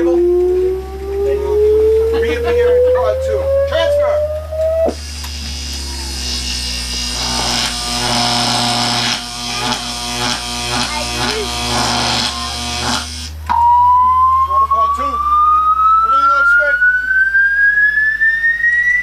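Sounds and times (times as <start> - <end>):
electric buzzing hum: 0.0 - 19.0
rising whine: 0.0 - 19.0.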